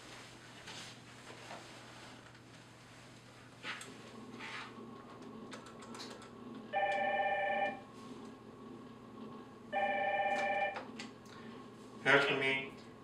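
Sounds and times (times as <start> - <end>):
telephone ringing tone: 6.7 - 7.8, 9.7 - 10.9.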